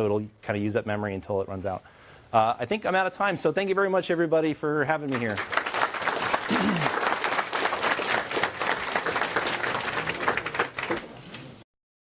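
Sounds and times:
audience applauding: 5.1s - 11.3s.

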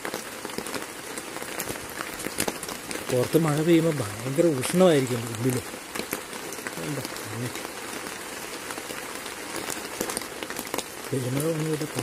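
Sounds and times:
rain pattering on tent: 0.0s - 12.0s.

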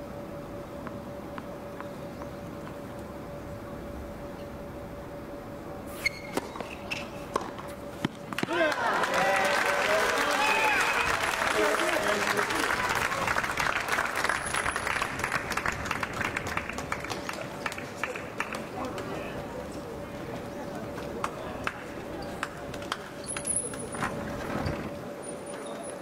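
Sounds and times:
crowd applauding: 8.4s - 19.3s.

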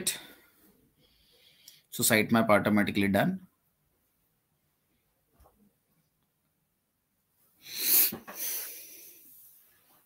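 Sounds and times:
loud breath: 7.6s - 9.4s.

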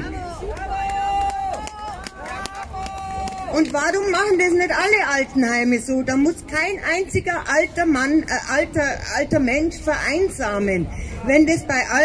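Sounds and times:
crowd calling out: 0.0s - 3.7s
sharp claps: 0.5s - 3.8s.

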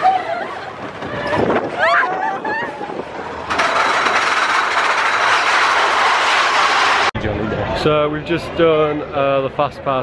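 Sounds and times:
roller coaster rushing along track: 0.0s - 8.1s.

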